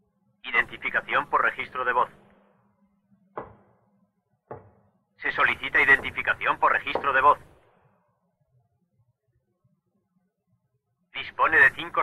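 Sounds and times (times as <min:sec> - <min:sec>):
brief knocks: 0:03.4 - 0:03.8
person speaking: 0:05.3 - 0:07.6.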